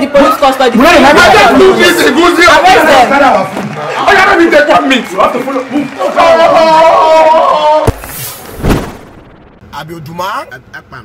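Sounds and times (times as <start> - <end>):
man speaking: 9.7 - 11.0.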